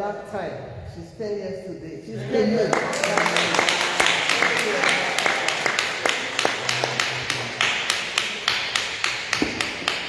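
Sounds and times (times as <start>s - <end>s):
hands clapping in steady rhythm: 2.6s - 10.0s.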